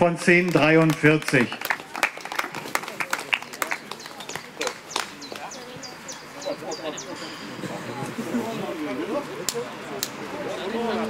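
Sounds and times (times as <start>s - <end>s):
people talking: 0.0s - 1.6s, 2.7s - 11.0s.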